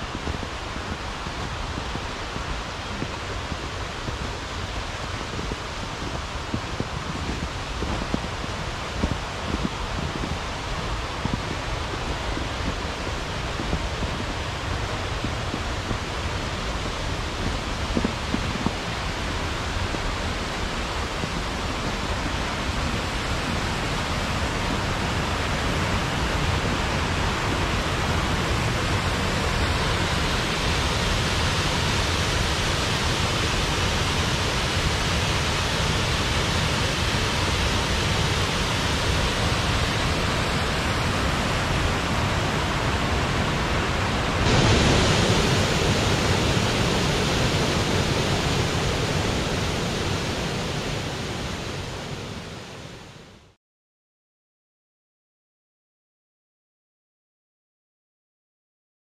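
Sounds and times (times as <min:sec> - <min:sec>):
river rushing over rocks: 0:00.0 - 0:53.1
waterfall: 0:00.0 - 0:53.6.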